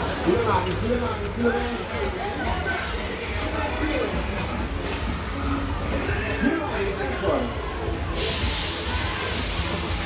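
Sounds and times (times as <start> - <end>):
steady high hiss: 8.0 - 10.0.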